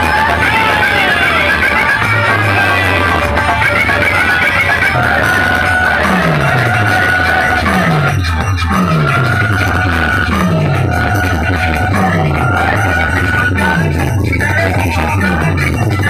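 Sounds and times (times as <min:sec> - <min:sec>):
loud dance music: 0:00.0 - 0:16.0.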